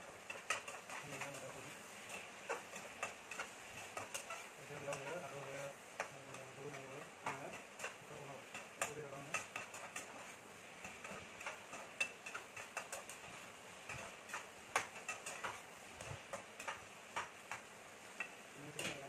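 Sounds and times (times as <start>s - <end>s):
faint steady hiss: 0.0s - 19.0s
metal spatula scraping frying pan: 0.0s - 19.0s.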